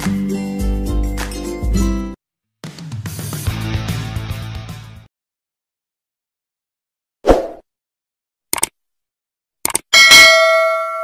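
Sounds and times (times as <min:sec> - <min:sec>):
notification bell ding: 0:10.0 - 0:11.0.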